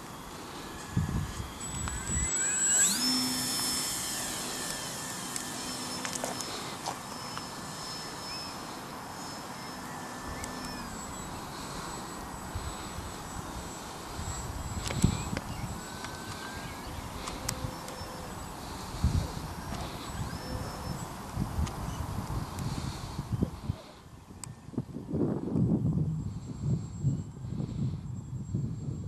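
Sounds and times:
model plane motor whine: 0:00.0 - 0:29.0.

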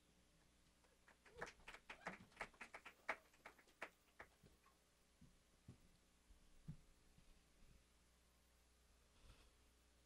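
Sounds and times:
scattered audience clapping: 0:00.8 - 0:04.5.

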